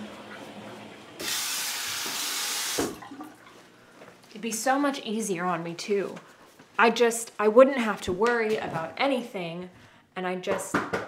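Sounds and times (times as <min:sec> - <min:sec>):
water running from a tap: 0:01.2 - 0:03.5.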